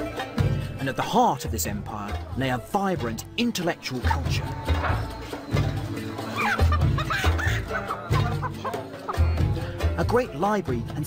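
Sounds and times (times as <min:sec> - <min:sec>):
music with pulsing bass: 0:00.0 - 0:03.4, 0:04.0 - 0:11.0
chickens clucking: 0:04.6 - 0:09.6.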